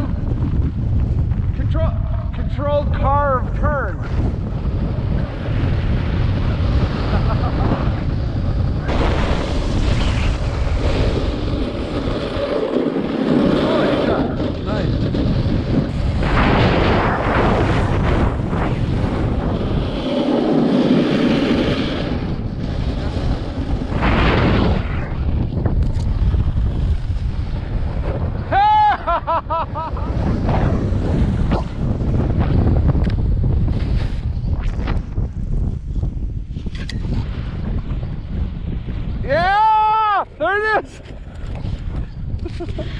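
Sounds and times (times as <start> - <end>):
wind buffeting microphone: 0.0 - 42.9
snowboard edge scraping snow: 8.9 - 25.2, 26.0 - 35.1.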